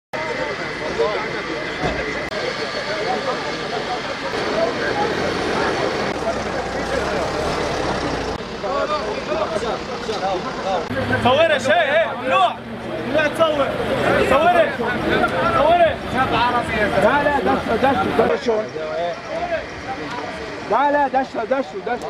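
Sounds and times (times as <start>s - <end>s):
men's voices: 0.2s - 22.0s
vehicle engines running: 0.2s - 22.0s.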